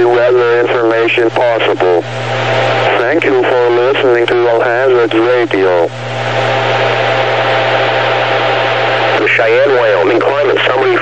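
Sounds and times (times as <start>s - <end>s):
low hum: 0.0s - 11.0s
radio static hiss: 0.0s - 11.0s.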